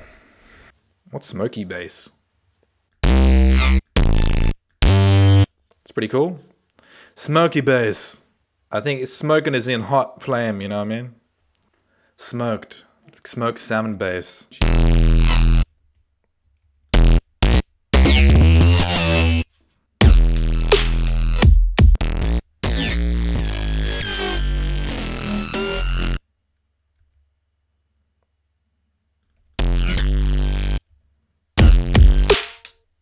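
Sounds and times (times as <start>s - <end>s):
buzzy synth bass notes: 3.0s - 5.5s, 14.6s - 15.6s, 17.0s - 19.4s, 20.0s - 26.2s, 29.6s - 30.8s, 31.6s - 32.4s.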